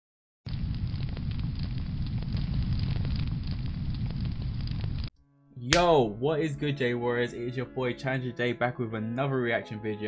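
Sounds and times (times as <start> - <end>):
flames rumbling and crackling: 0.5 - 5.1.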